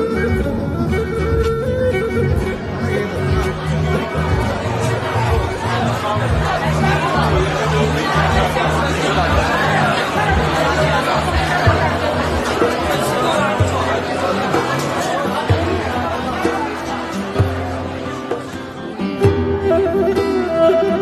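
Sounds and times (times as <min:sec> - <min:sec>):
background music: 0:00.0 - 0:21.0
people chatting indistinctly: 0:00.0 - 0:21.0.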